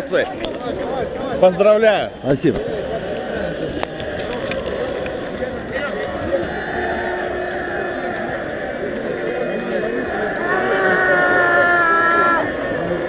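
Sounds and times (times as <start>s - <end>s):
crowd talking: 0.0s - 13.0s.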